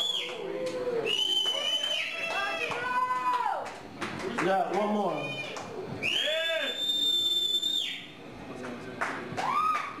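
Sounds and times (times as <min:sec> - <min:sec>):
shrill whistle: 0:00.0 - 0:00.4, 0:01.0 - 0:02.2, 0:05.2 - 0:08.1
audience cheering: 0:09.4 - 0:10.0
rising whoop: 0:09.4 - 0:10.0.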